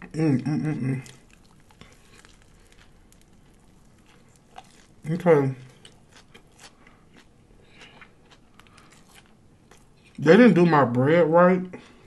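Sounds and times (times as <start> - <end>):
faint chewing: 0.3 - 10.2, 11.7 - 12.0.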